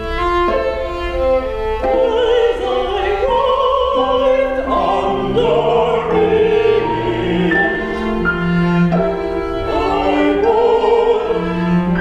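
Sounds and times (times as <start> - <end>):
string quartet chords: 0.0 - 12.0.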